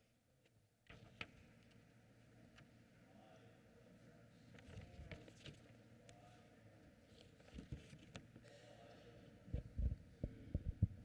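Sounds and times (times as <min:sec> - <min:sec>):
low dull thumps: 0:09.7 - 0:11.0.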